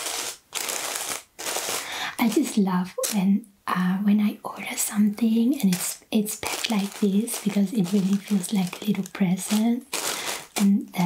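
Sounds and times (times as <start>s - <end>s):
tissue paper rustling and crinkling: 0.0s - 3.2s, 5.6s - 11.0s.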